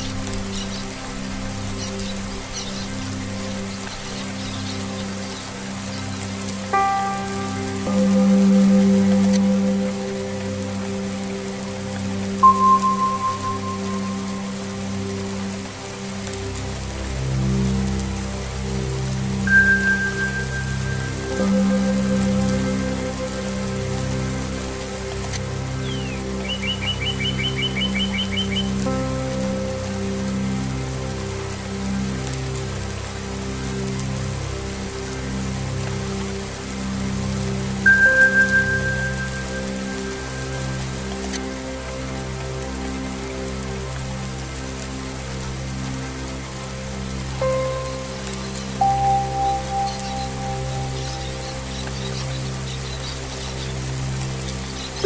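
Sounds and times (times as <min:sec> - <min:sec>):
steady rain: 0:00.0 - 0:55.0
singing bowl tones: 0:12.4 - 0:14.4
bird chirping: 0:25.8 - 0:28.7.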